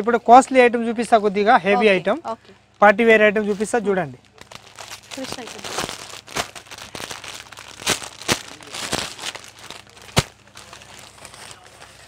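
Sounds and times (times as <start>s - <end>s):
plastic wrapping crinkling: 2.6s - 12.0s.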